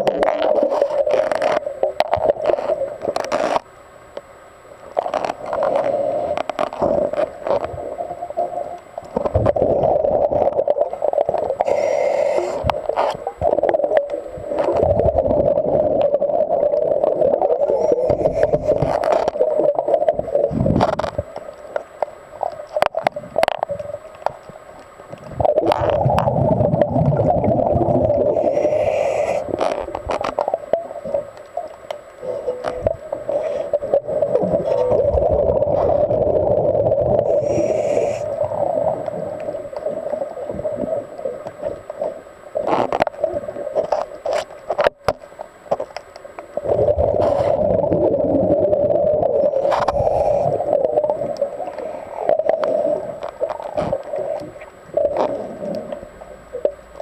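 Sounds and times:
exhaled bubbles underwater: 0:05.2 - 0:21.8, 0:25.1 - 0:43.8, 0:46.5 - 0:57.0
regulator inhale hiss: 0:05.8 - 0:07.1, 0:11.6 - 0:12.9, 0:28.3 - 0:29.6, 0:37.2 - 0:38.7, 0:49.9 - 0:50.8, 0:51.6 - 0:53.2.

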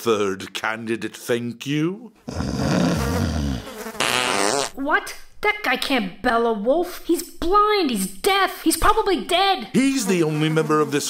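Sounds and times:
flies buzzing: 0:02.3 - 0:04.8.

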